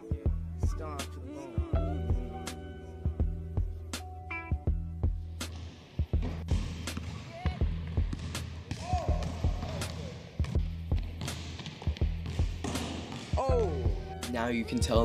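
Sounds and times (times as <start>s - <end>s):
background music: 0.0s - 15.0s.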